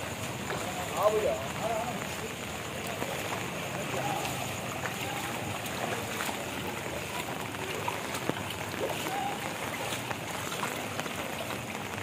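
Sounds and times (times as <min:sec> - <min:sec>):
water sloshing around wading legs: 0:00.0 - 0:12.0.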